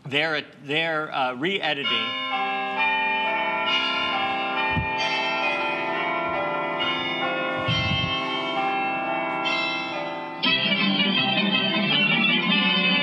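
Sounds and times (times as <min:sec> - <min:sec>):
bells pealing: 0:01.4 - 0:13.0.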